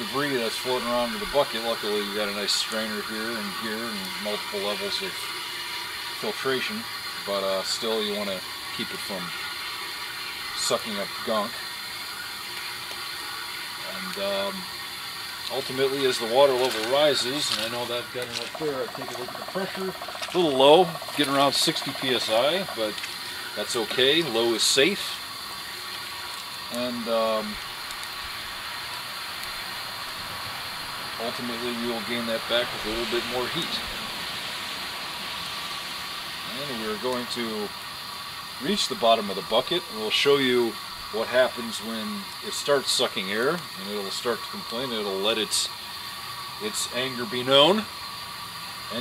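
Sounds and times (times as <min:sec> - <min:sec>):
steam injector hissing: 0:00.0 - 0:49.0.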